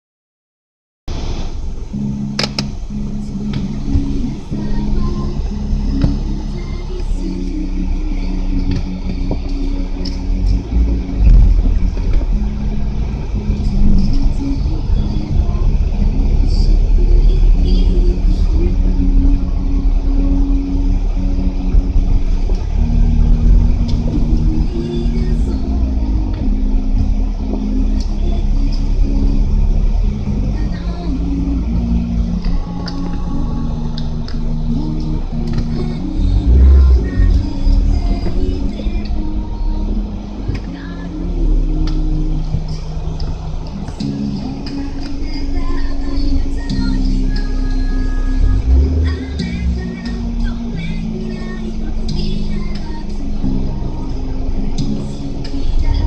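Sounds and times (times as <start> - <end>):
engine and road rumble: 1.1 - 56.0
music playing: 1.1 - 56.0.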